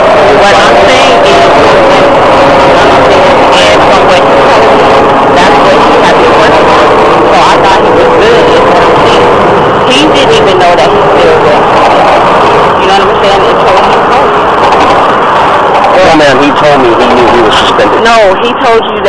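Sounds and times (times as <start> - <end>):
woman talking: 0.0 - 14.4, 17.7 - 19.0
loud steady noise: 0.0 - 19.0.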